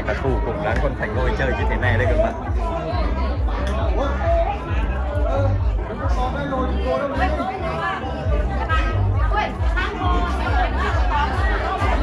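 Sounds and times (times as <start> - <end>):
crowd of voices chattering: 0.0 - 12.0
music with pulsing bass beat: 0.0 - 12.0.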